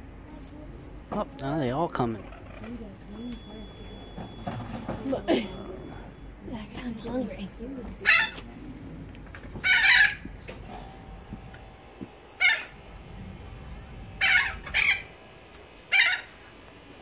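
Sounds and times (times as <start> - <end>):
birds calling loudly: 9.5 - 10.4, 12.1 - 13.2, 14.1 - 16.6.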